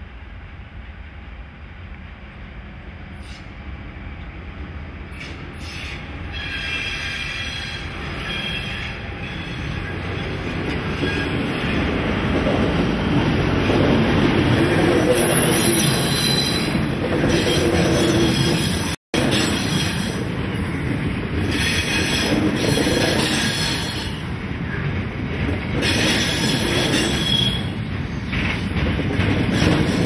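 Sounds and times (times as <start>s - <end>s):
wheels squealing: 25.8s - 28.5s.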